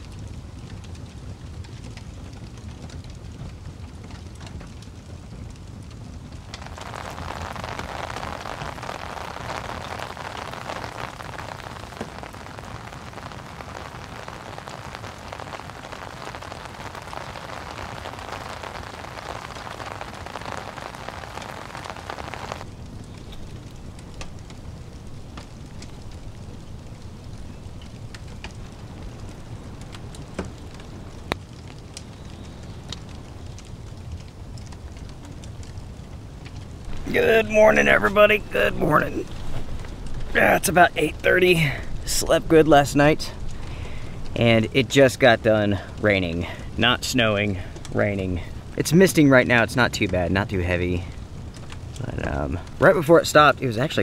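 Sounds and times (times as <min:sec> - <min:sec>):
rain falling on a tent: 0:00.0 - 0:54.0
raindrop clicks: 0:00.0 - 0:54.0.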